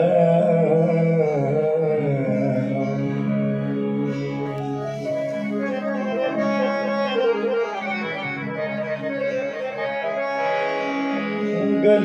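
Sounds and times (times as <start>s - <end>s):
person singing: 0.0s - 5.5s, 11.4s - 12.0s
harmonium playing held notes: 0.0s - 12.0s.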